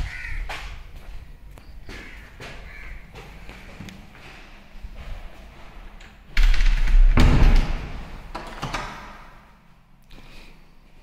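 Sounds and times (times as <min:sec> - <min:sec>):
crow cawing: 0:00.0 - 0:00.5, 0:01.8 - 0:03.9
footsteps on tiled floor: 0:00.0 - 0:05.8.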